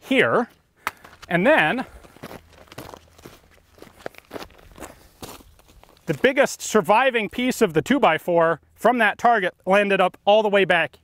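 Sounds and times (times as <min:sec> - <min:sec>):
footsteps crunching on stony dirt: 0:00.3 - 0:07.7.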